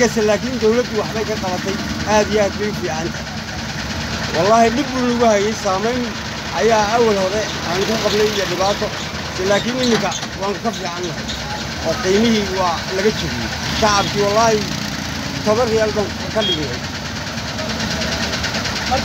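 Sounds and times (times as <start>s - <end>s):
auto-rickshaw engine idling: 0.0s - 19.0s.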